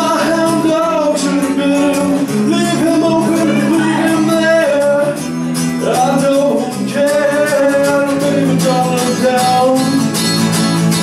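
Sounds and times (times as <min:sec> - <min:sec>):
man singing: 0:00.0 - 0:10.5
guitar and bass: 0:00.0 - 0:11.0.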